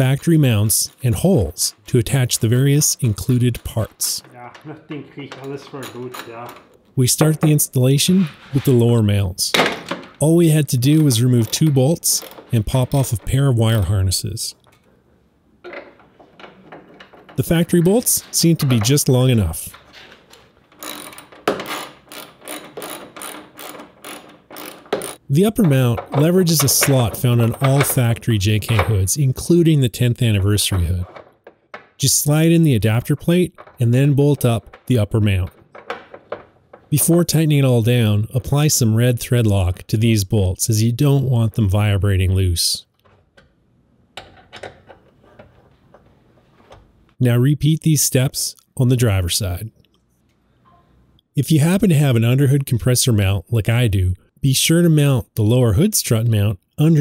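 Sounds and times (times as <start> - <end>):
hand ratchet clicking: 20.7 - 25.2.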